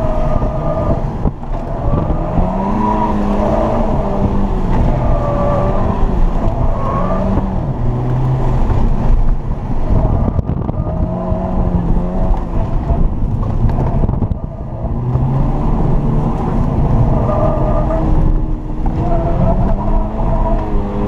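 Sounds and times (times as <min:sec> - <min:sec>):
car engine revving: 0:00.0 - 0:21.0
road and wind noise: 0:00.0 - 0:21.0.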